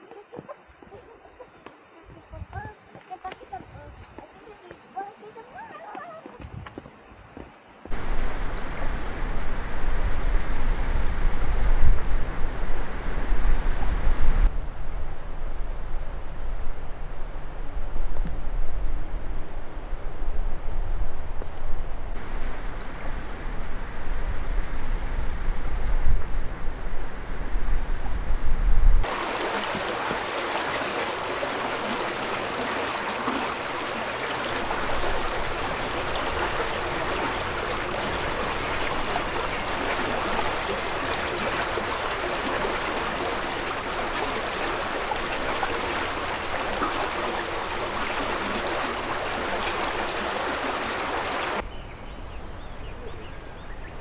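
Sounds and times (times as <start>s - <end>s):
stream water flowing: 7.9s - 14.5s, 18.0s - 24.3s, 29.0s - 51.6s
wind buffeting microphone: 7.9s - 51.6s.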